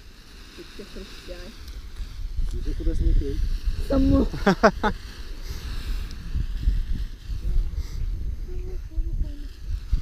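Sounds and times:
wind buffeting microphone: 0.8 - 10.0.

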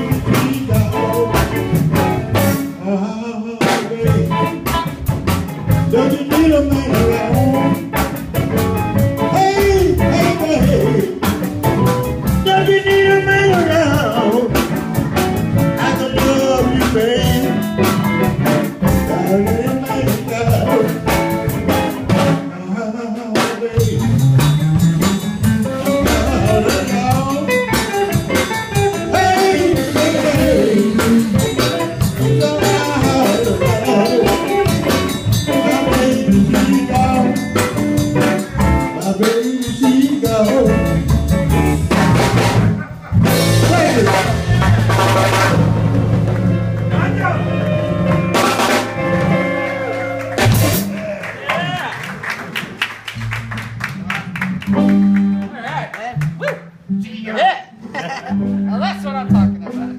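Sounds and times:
drum kit steady beat: 0.0 - 2.8, 3.6 - 22.5, 23.2 - 51.0, 53.2 - 55.6
live blues band: 0.0 - 57.0, 57.6 - 59.9
electric guitar: 0.0 - 59.9.

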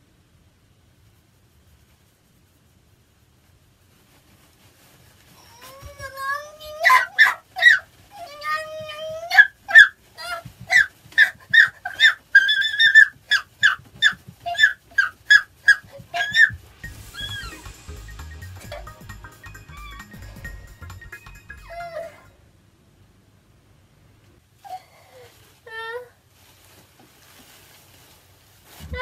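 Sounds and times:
woman squealing with laughter: 15.7 - 17.6, 21.6 - 22.3.

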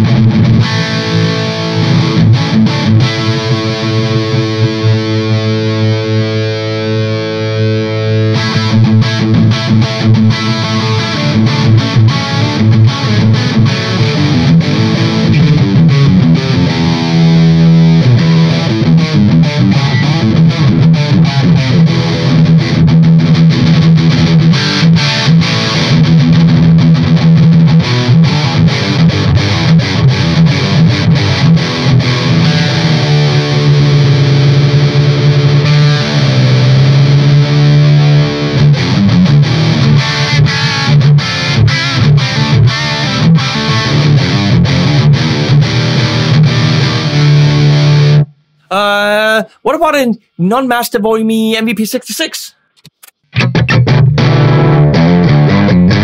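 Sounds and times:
distorted electric guitar riff: 0.0 - 50.4, 52.7 - 56.0.

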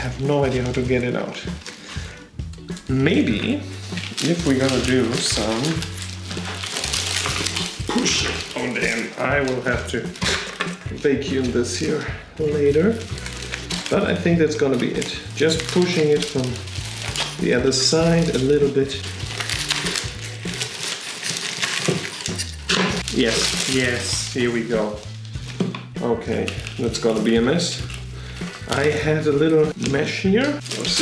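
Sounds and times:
background music with bass line: 0.0 - 20.8, 21.9 - 31.0
soil and roots crunching: 2.6 - 10.4, 11.3 - 31.0
soil and dry leaves rustling: 14.8 - 25.6.

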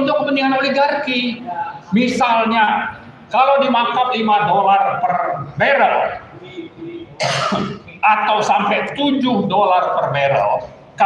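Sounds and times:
man coughing: 7.2 - 7.9.

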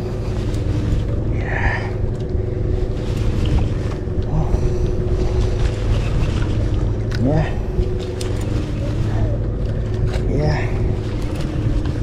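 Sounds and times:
boat engine idling: 0.0 - 12.0.

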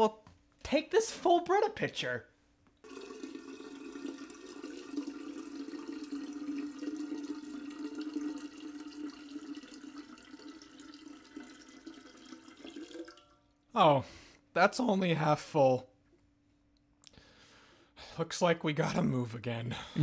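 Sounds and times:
water pouring from pitcher: 2.8 - 13.5.

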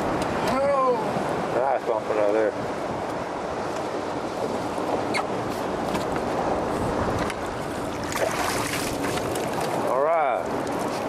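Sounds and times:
water splashing against boat: 0.0 - 11.0
wind rushing over microphone: 0.0 - 11.0.

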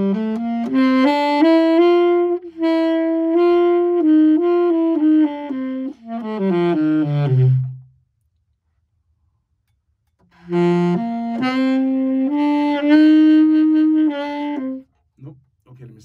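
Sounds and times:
tenor saxophone playing: 0.0 - 8.0, 10.3 - 15.0.

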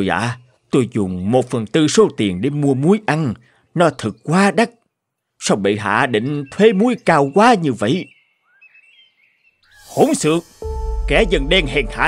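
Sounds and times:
faint birds chirping: 0.0 - 10.4.

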